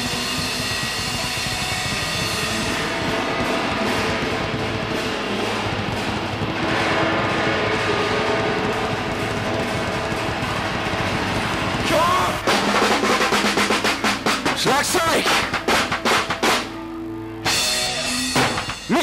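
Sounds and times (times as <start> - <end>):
live rock band playing: 0.0 - 19.0.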